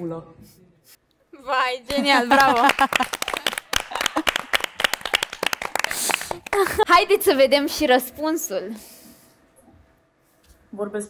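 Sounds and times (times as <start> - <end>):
hands clapping in applause: 1.9 - 6.9.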